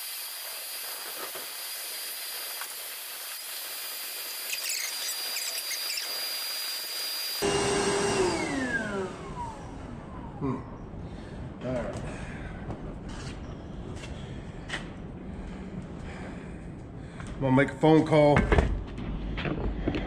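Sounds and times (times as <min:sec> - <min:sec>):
shop vac whining: 0:00.0 - 0:11.0.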